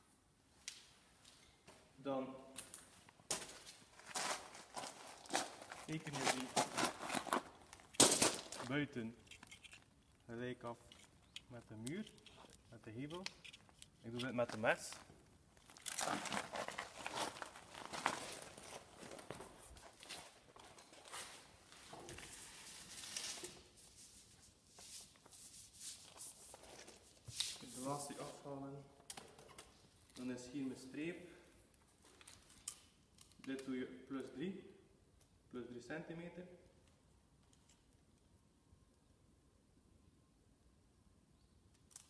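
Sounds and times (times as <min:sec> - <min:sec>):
footsteps on gravel: 0:03.3 - 0:08.8, 0:15.7 - 0:21.3
scratching and rustling: 0:03.3 - 0:28.4.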